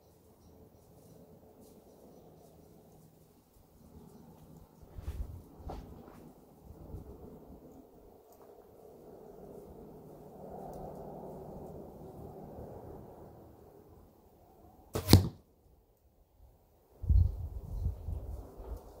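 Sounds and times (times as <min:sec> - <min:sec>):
arrow striking straw target: 0:14.9 - 0:15.5.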